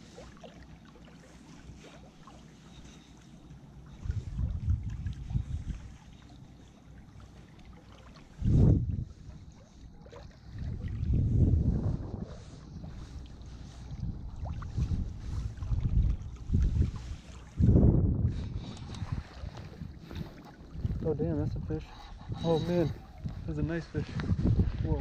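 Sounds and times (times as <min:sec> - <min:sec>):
wind buffeting microphone: 0:03.8 - 0:06.2, 0:08.2 - 0:25.0.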